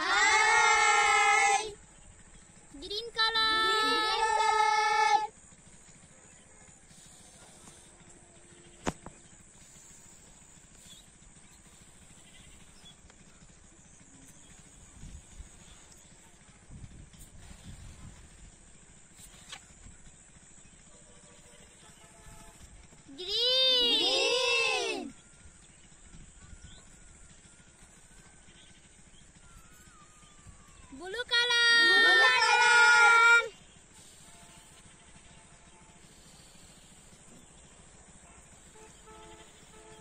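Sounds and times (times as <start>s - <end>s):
loud voice-like call with sliding pitch: 3.3s - 5.3s, 23.2s - 25.1s, 29.8s - 33.6s
faint puffs of breath: 6.7s - 8.4s, 9.5s - 12.4s, 33.9s - 35.0s, 35.9s - 37.6s.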